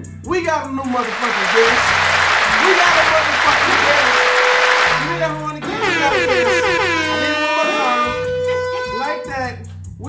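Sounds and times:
background music: 0:00.0 - 0:10.0
air horn with falling pitch: 0:03.9 - 0:08.8.

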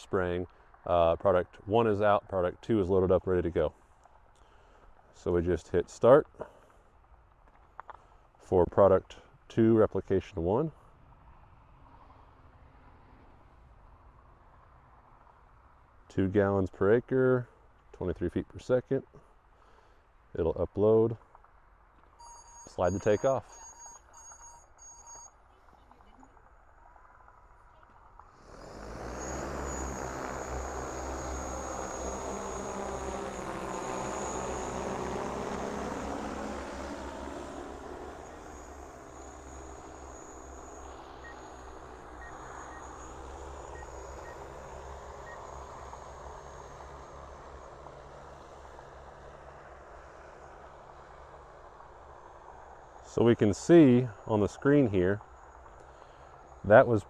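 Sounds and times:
drone rotors with high whine: 0:22.0 - 0:57.0.

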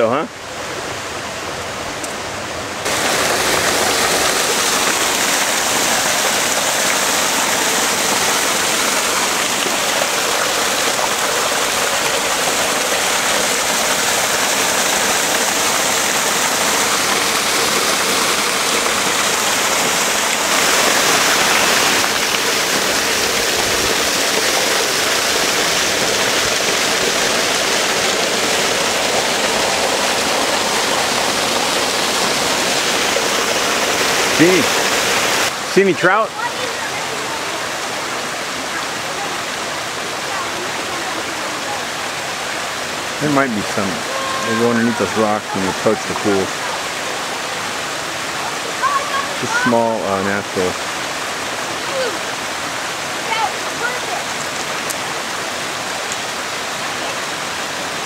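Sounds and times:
stream rushing over boulders: 0:00.0 - 0:58.0.

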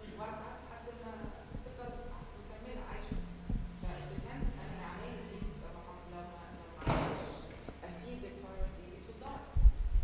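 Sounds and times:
faint low hum: 0:00.0 - 0:10.0
soft dull thumps: 0:01.2 - 0:06.2.

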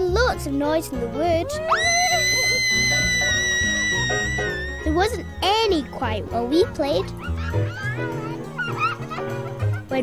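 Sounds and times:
background music: 0:00.0 - 0:10.0
girl squealing: 0:01.4 - 0:05.4, 0:07.2 - 0:09.0.

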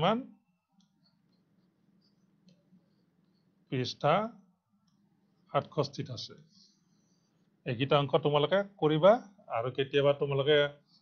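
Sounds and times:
man speaking: 0:00.0 - 0:00.4, 0:03.7 - 0:04.4, 0:05.5 - 0:06.5, 0:07.6 - 0:10.9
faint low hum: 0:00.0 - 0:11.0.

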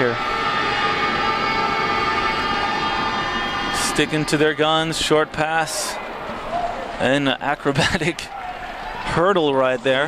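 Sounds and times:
horn-like tones: 0:00.0 - 0:06.0
crowd hum: 0:00.0 - 0:10.0.

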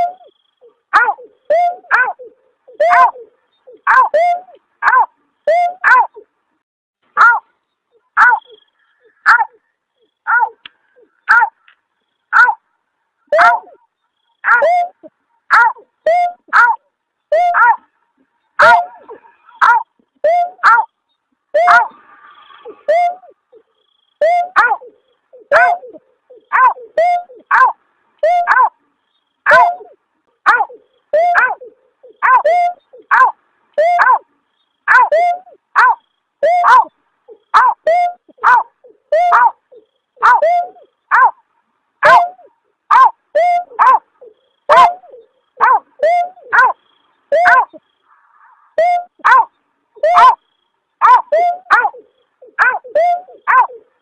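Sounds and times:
snipe yelping call: 0:00.0 - 0:06.2, 0:07.2 - 0:12.6, 0:13.3 - 0:17.9, 0:18.5 - 0:20.9, 0:21.5 - 0:28.7, 0:29.4 - 0:41.4, 0:42.0 - 0:54.0.

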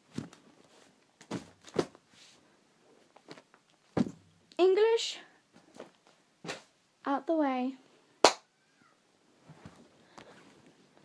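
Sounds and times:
sharp slap: 0:06.5 - 0:06.7, 0:08.2 - 0:08.4
faint rustling: 0:09.3 - 0:11.0.

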